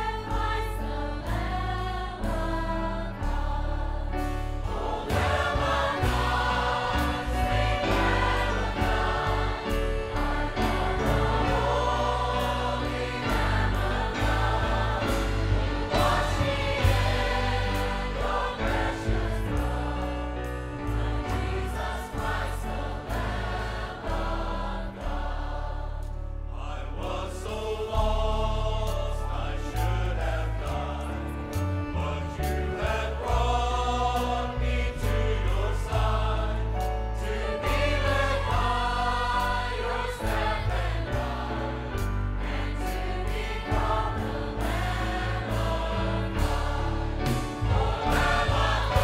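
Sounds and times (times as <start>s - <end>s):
choir singing a gospel hymn: 0.0s - 49.0s
steady bass: 0.0s - 49.0s
violins: 0.0s - 49.0s.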